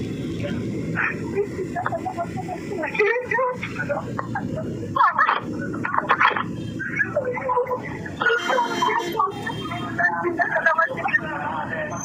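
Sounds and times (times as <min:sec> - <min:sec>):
two people talking on a phone: 0:00.4 - 0:11.8.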